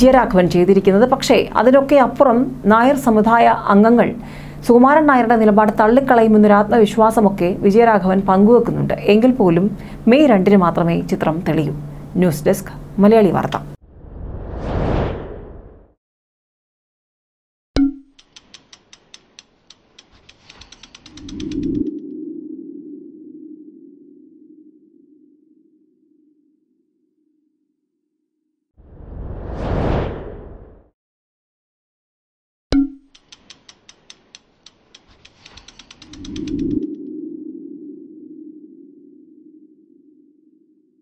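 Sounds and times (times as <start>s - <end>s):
low hum: 0.0s - 15.9s, 20.5s - 27.7s, 35.2s - 41.0s
whoosh: 13.8s - 16.0s, 28.8s - 30.9s
sharp ticks: 18.1s - 22.0s, 33.1s - 37.0s.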